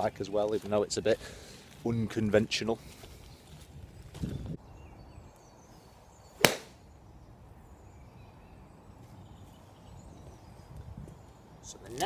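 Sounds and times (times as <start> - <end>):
golf club striking ball: 6.4 - 6.8.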